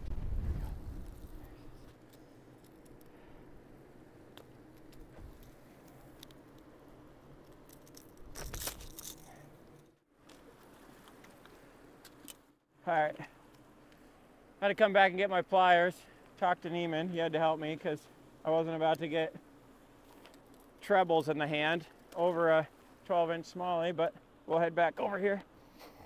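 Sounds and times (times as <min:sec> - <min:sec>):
faint handling noise: 0:00.1 - 0:12.6, 0:19.7 - 0:23.0
small clicks: 0:04.3 - 0:06.7.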